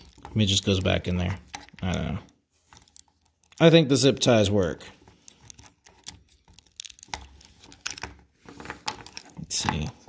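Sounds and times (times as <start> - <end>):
plastic clicks and rattles: 0.0 - 3.7, 5.2 - 10.0.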